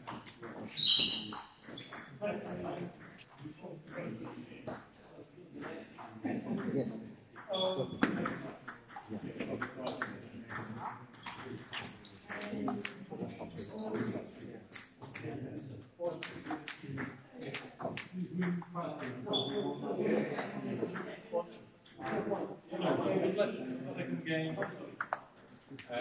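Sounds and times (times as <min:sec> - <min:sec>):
chatter of voices: 0:00.0 - 0:26.0
table tennis balls clicking: 0:08.1 - 0:14.0, 0:16.2 - 0:18.2, 0:24.6 - 0:25.9.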